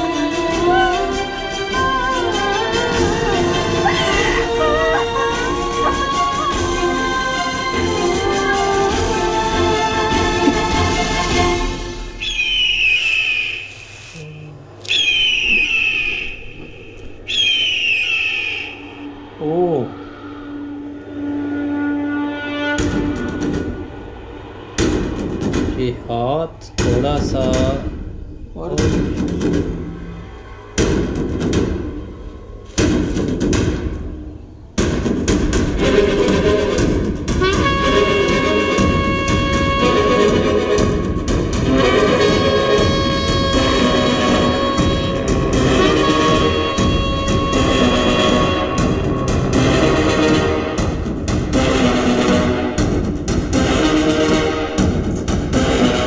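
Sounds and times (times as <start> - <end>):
orchestral music: 0.0 - 13.2, 19.0 - 26.0, 35.1 - 56.0
eagle screaming: 12.2 - 13.8, 14.9 - 21.0
long horn note: 37.4 - 40.8.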